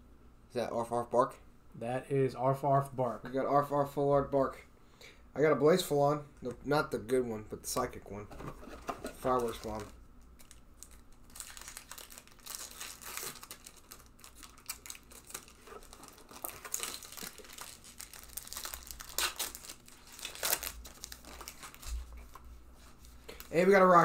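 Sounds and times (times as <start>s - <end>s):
foil wrappers crinkling and tearing: 9.2s - 22.4s.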